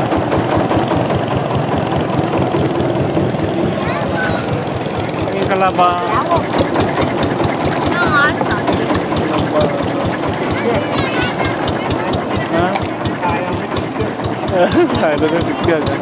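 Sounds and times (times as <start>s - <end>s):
boat engine running: 0.0s - 16.0s
voices calling out: 1.6s - 16.0s.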